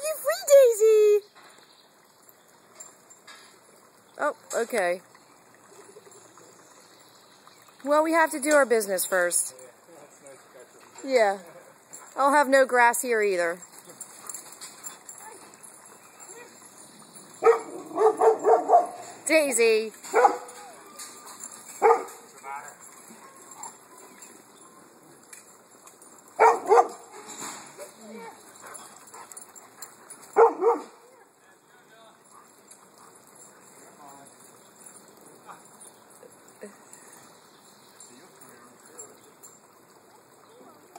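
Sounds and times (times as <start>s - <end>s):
woman speaking: 0.0s - 1.2s, 7.8s - 9.5s, 11.0s - 11.4s, 12.2s - 13.6s, 19.2s - 20.0s
faint outdoor background noise: 0.0s - 40.9s
dog barking: 17.4s - 19.0s, 20.1s - 20.5s, 21.8s - 22.2s, 26.4s - 27.0s, 30.4s - 31.1s.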